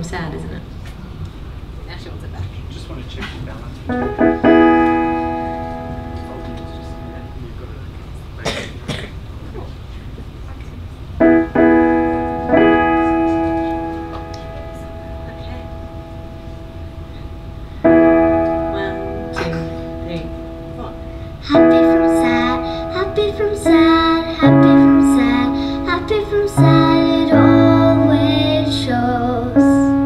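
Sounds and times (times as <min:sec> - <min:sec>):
electric piano chords: 0:03.8 - 0:07.9, 0:11.2 - 0:30.0.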